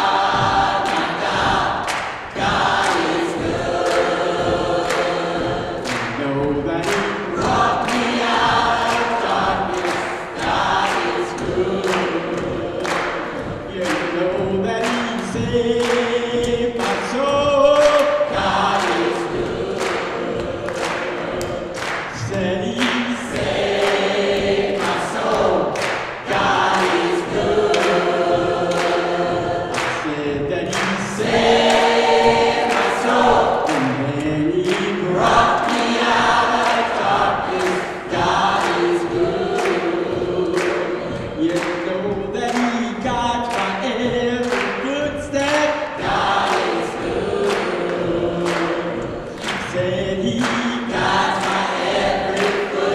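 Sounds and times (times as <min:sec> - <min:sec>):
choir singing in harmony: 0:00.0 - 0:52.9
steady beat: 0:00.0 - 0:52.9.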